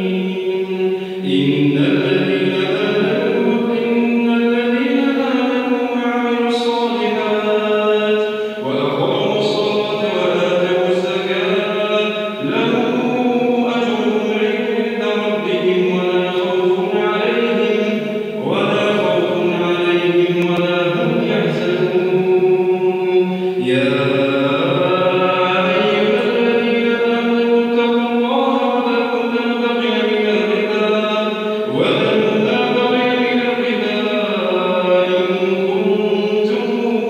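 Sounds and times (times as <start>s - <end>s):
man chanting recitation: 0.0s - 37.0s.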